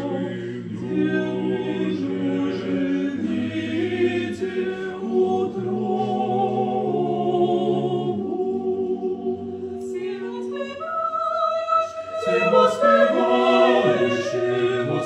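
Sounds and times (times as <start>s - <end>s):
choir singing a cappella hymn: 0.0s - 15.0s.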